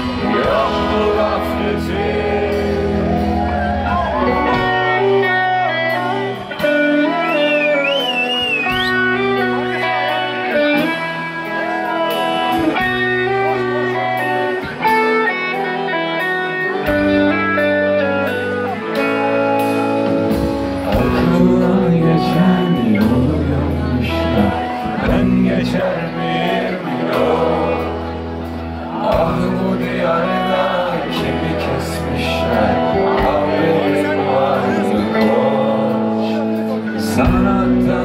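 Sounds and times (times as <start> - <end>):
live rock band: 0.0 - 38.0.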